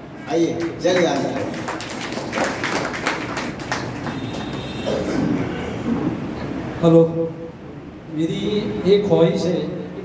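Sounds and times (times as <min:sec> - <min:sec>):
audience applause: 0:00.6 - 0:04.8.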